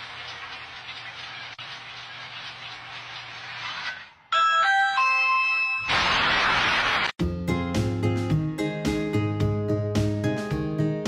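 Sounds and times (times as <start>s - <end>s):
electronic chime: 4.3s - 6.0s.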